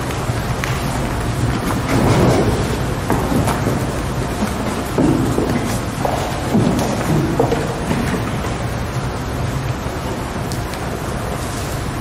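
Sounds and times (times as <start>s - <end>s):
low rumbling handling noise: 0.0s - 12.0s.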